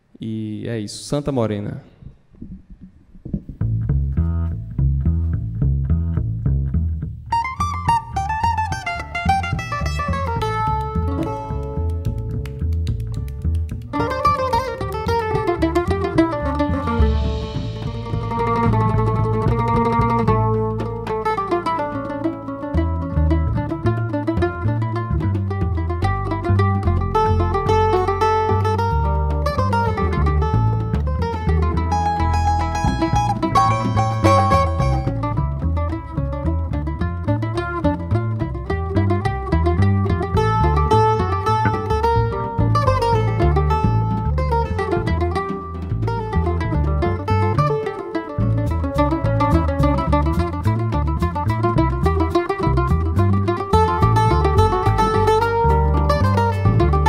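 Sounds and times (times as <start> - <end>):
plucked double bass: 1.8 - 57.0
mandolin playing melody: 2.4 - 57.0
drum kit with cymbals: 16.7 - 20.4.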